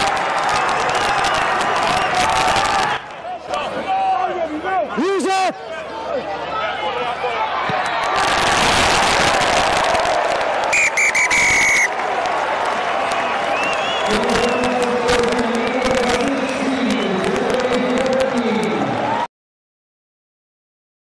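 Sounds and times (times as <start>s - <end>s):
crowd cheering: 0.0s - 19.3s
referee whistle: 10.7s - 12.0s, 13.5s - 14.9s.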